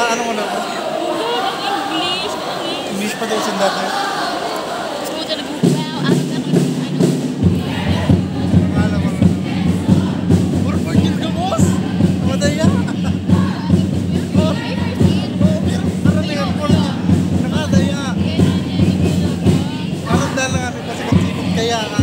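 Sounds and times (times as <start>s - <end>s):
group of voices chanting: 0.0s - 22.0s
music with dense steady beat: 5.6s - 22.0s.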